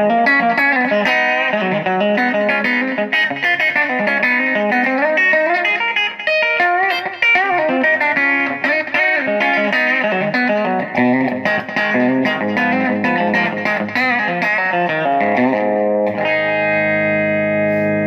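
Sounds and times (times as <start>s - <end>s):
electric guitar chord ringing: 0.0s - 18.0s
electric guitar lead lines: 0.0s - 18.0s.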